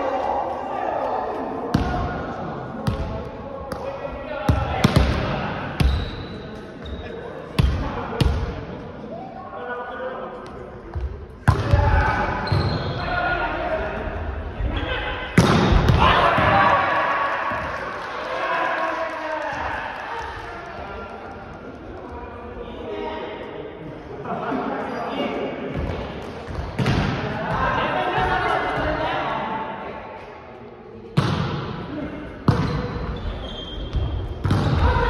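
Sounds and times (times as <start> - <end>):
players shouting: 11.5 - 20.2
volleyball slaps: 15.4 - 16.6, 25.8 - 27.3, 31.2 - 31.7, 34.4 - 35.0.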